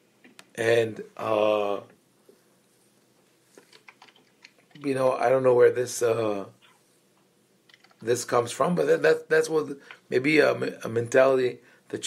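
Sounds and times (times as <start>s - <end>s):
man speaking: 0.6s - 1.9s, 4.8s - 6.6s, 8.0s - 12.0s
typing on computer keyboard: 3.6s - 4.8s, 7.7s - 8.0s.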